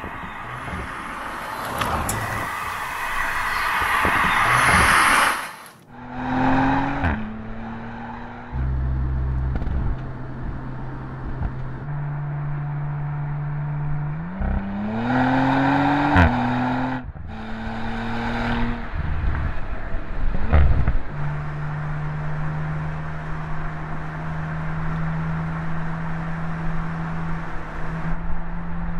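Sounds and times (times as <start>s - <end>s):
car engine running: 0.0s - 3.0s, 5.5s - 14.6s.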